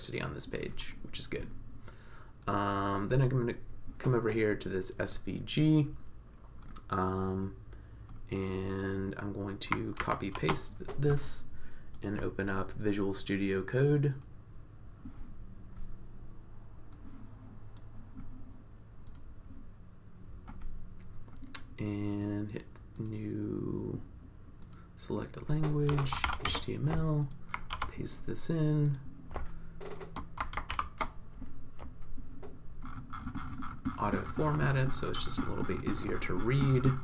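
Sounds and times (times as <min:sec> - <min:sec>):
low steady hum: 0:00.0 - 0:37.0
computer mouse click: 0:19.0 - 0:19.3
keyboard keystrokes: 0:25.5 - 0:27.9, 0:28.8 - 0:31.2.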